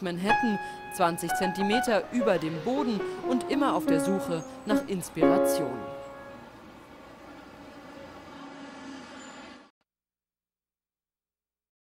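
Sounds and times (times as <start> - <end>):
faint city traffic: 0.0 - 9.7
piano chord ringing: 0.3 - 6.8.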